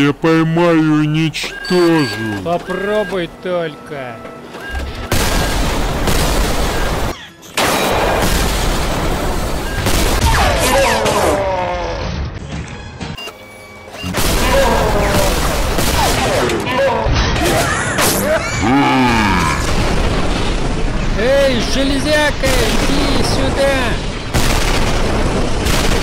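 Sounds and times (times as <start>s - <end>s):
film music: 0.0s - 8.6s, 11.2s - 17.2s
rapid gunfire with booms: 5.0s - 11.1s, 14.2s - 16.6s, 19.6s - 26.0s.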